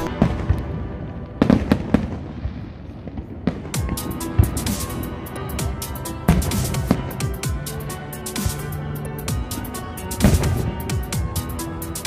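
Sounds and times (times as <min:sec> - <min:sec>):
fireworks bangs: 0:00.0 - 0:07.7.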